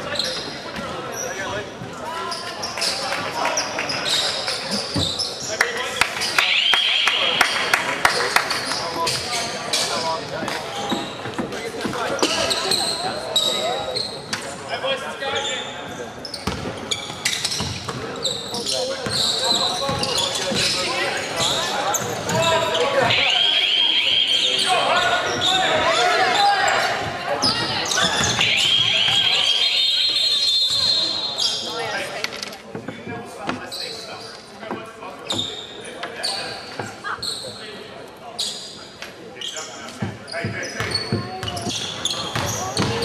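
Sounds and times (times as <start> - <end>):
sneakers squeaking on court: 0.0 - 5.5, 15.3 - 23.4, 24.1 - 32.0, 35.2 - 43.0.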